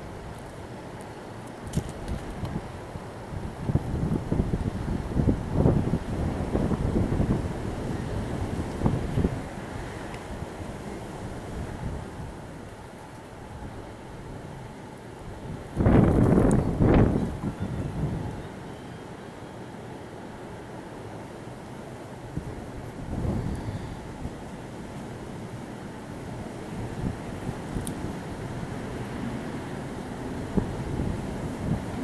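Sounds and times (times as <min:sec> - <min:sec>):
wind buffeting microphone: 0:01.6 - 0:12.8, 0:15.2 - 0:18.6, 0:22.3 - 0:24.7, 0:26.2 - 0:32.0.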